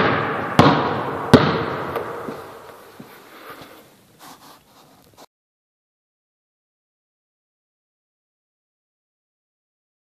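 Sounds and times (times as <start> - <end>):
faint room hiss: 1.0 - 5.3
soft breathy puffs: 2.9 - 5.3.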